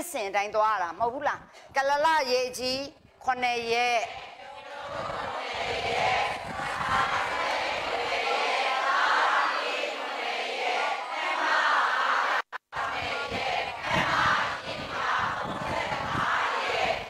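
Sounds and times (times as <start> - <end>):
crowd calling out together: 4.0 - 17.0.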